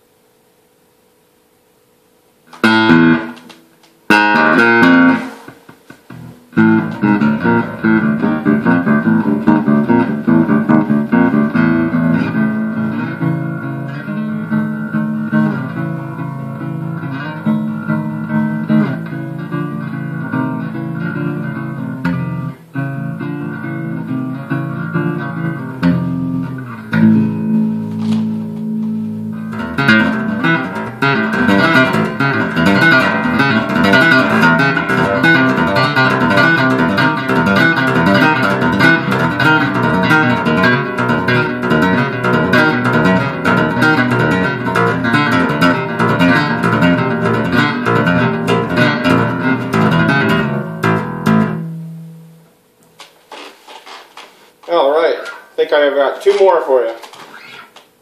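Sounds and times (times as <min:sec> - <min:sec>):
electric bass guitar: 0:02.5 - 0:03.5, 0:04.1 - 0:52.4.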